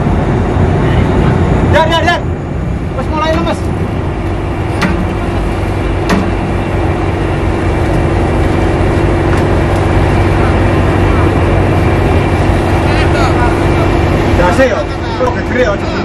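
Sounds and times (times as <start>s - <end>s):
boat engine humming: 0.0s - 16.0s
sea noise: 0.0s - 16.0s
wind: 0.0s - 16.0s.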